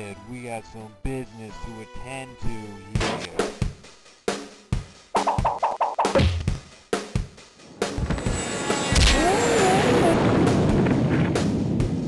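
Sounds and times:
cartoon kick hits: 0:05.2 - 0:06.6.

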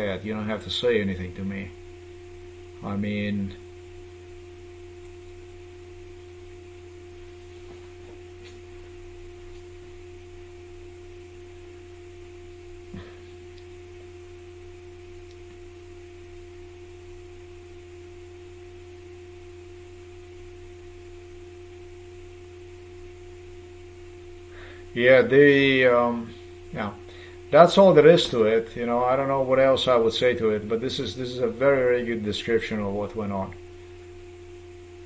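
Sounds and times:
electrical hum: 0:00.0 - 0:35.0.

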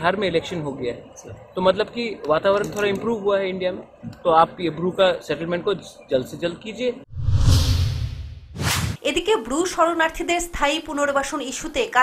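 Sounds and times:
short bright swish: 0:07.1 - 0:09.0
whoosh: 0:07.1 - 0:09.0.

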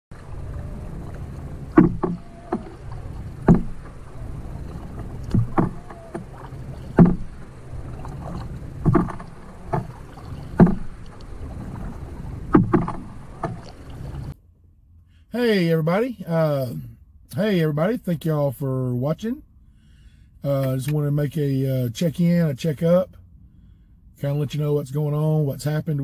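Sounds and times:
paddle strokes in water: 0:00.1 - 0:14.4
wind rumble on microphone: 0:00.1 - 0:14.4.

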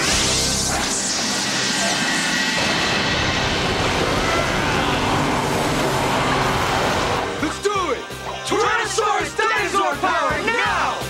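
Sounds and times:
loud rushing sound effect: 0:00.0 - 0:07.4.

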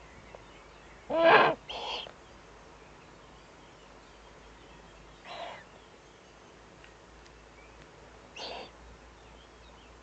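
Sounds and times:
owl calls: 0:01.1 - 0:02.1, 0:05.2 - 0:05.7, 0:08.4 - 0:08.8.

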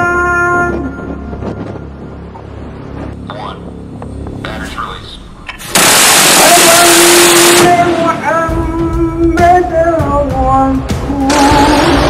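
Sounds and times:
loud rush of noise: 0:05.2 - 0:08.3.

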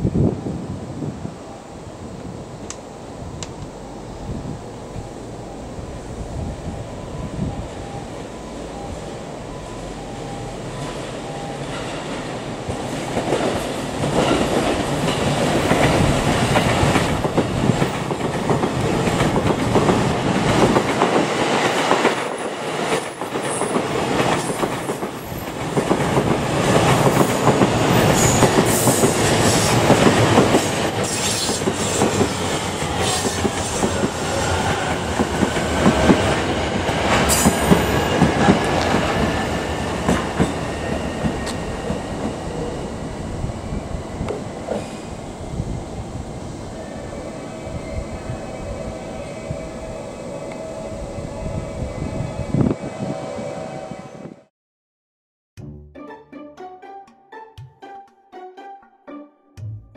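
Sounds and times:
train high whine: 0:00.0 - 0:54.5.

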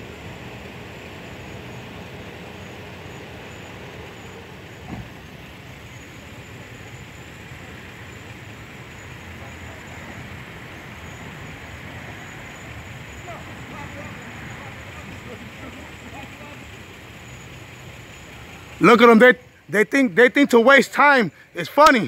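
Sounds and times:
traffic rumble: 0:00.0 - 0:22.0.

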